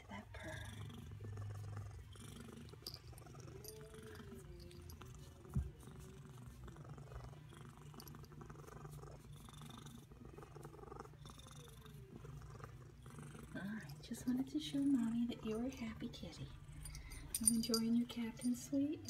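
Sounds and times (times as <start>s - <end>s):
cat purring: 0.0s - 19.0s.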